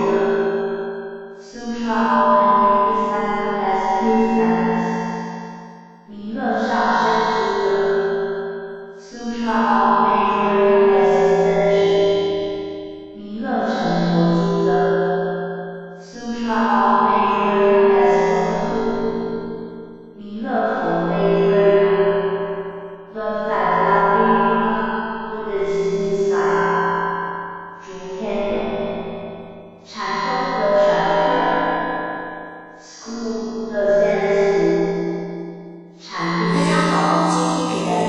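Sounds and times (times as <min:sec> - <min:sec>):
slow background melody: 0:36.2 - 0:38.0.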